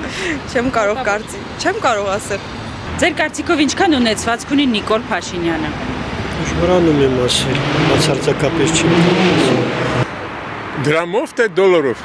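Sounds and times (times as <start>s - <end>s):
street traffic rumble: 0.0s - 12.0s
man speaking into a microphone: 6.4s - 9.8s, 10.8s - 12.0s.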